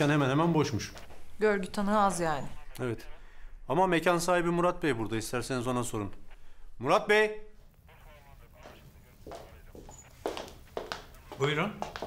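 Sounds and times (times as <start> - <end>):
footsteps on hard floor: 8.6 - 12.0.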